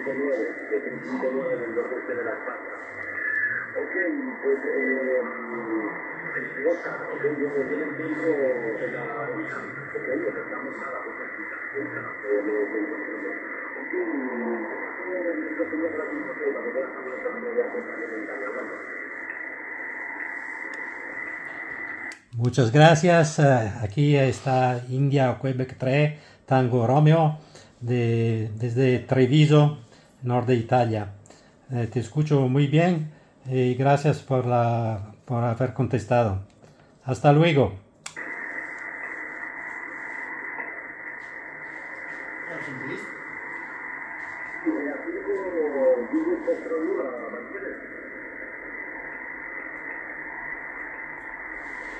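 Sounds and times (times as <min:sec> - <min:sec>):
thin radio voice: 0:00.0 - 0:22.1, 0:38.2 - 0:50.5
steady radio hiss: 0:00.0 - 0:51.9.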